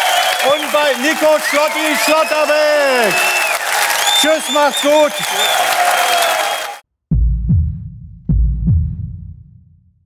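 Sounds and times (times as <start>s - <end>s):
heartbeat deep double thump: 7.1s - 10.0s.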